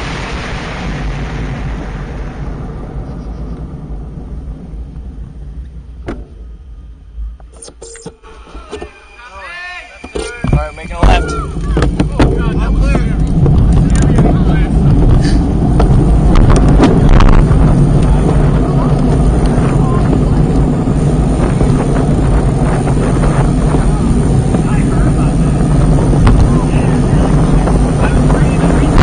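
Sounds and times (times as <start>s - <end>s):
wind rumble on microphone: 0.0s - 9.0s, 10.0s - 29.0s
road and bike noise: 0.0s - 29.0s.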